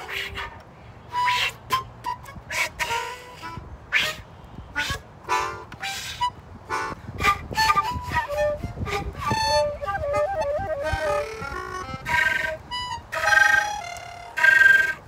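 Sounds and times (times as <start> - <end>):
flute air blasts and notes: 0.0 - 15.0
melodica: 0.0 - 15.0.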